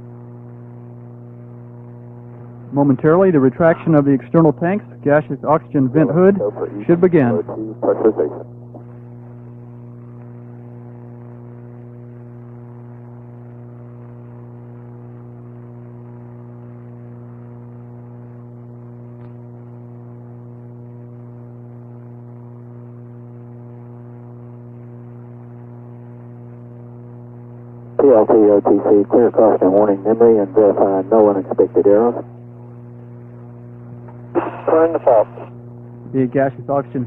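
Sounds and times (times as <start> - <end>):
low electrical hum: 0.0 - 37.0.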